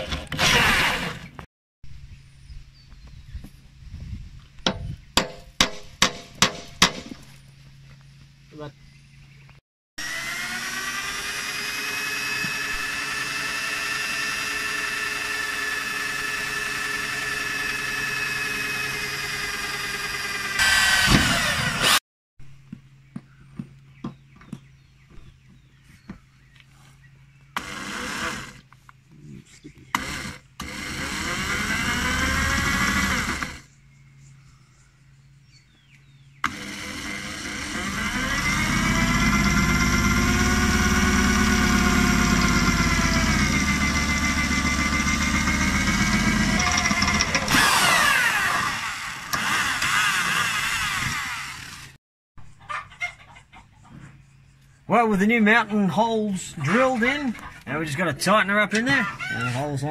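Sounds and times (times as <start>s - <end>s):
cordless drill boring through metal: 0.0s - 1.4s, 10.0s - 22.0s, 27.6s - 28.7s, 29.9s - 33.7s, 36.4s - 52.0s.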